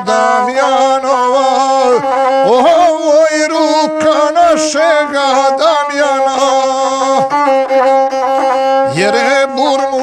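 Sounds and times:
bowed folk fiddle: 0.0s - 10.0s.

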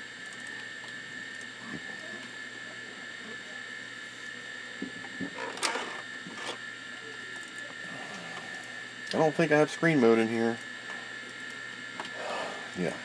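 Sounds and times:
computer equipment whine and hum: 0.0s - 13.0s.

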